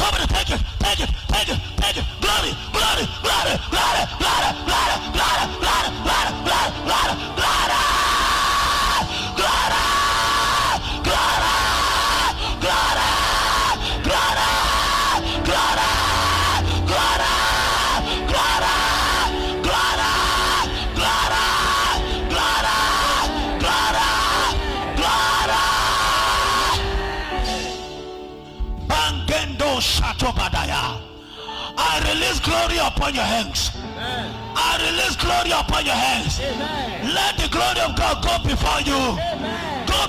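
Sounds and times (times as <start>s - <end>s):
man shouting through microphone: 0.0s - 26.8s, 31.8s - 33.8s, 34.6s - 40.0s
crowd: 0.0s - 30.7s, 31.8s - 40.0s
loud church music: 0.0s - 40.0s.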